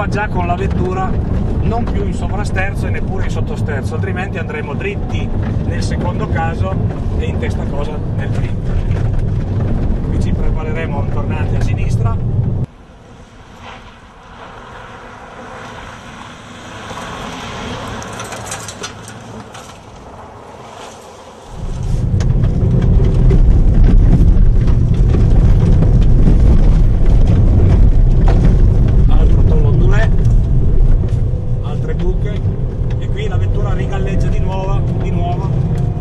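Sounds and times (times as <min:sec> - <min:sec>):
low rumble inside car cabin: 0:00.0 - 0:12.8, 0:21.5 - 0:36.0
car passing on gravel: 0:00.0 - 0:36.0.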